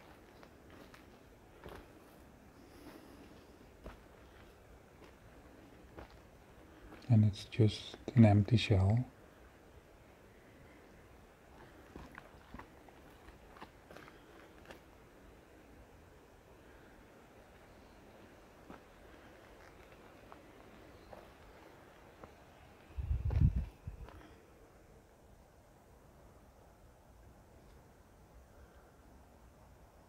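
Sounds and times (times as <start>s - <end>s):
footsteps on dry forest floor: 0.0s - 7.1s, 11.6s - 14.9s, 18.6s - 24.3s.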